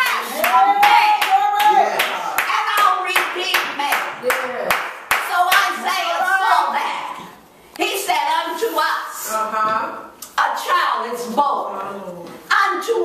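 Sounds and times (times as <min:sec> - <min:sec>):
hands clapping in rhythm: 0:00.0 - 0:05.8.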